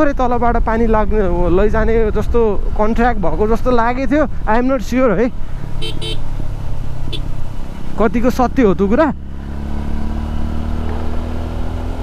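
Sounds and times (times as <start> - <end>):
wind and road noise: 0.0 - 12.0
motorcycle engine running: 5.4 - 12.0.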